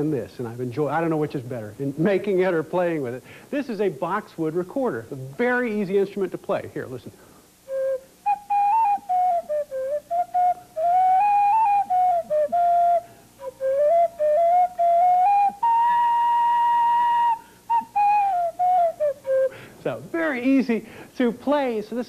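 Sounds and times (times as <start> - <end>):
recorder playing a tune: 7.6 - 20.0.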